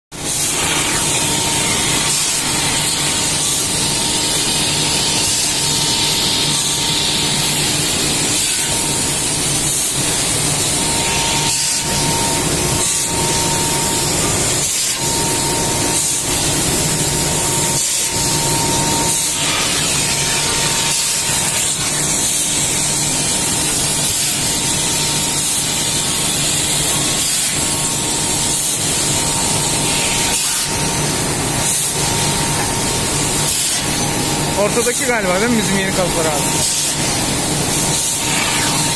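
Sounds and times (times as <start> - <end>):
workshop machinery hiss: 0.2 - 38.9.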